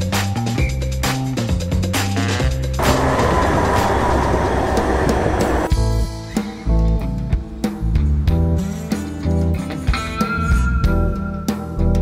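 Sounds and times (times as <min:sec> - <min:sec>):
thin whine: 0:02.8 - 0:05.7
tram passing: 0:02.8 - 0:05.8.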